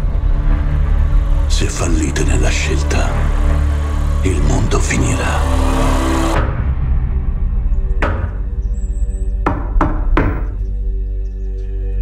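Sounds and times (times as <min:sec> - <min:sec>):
low music drone: 0:00.0 - 0:12.0
knocks on a wooden door: 0:09.4 - 0:10.6.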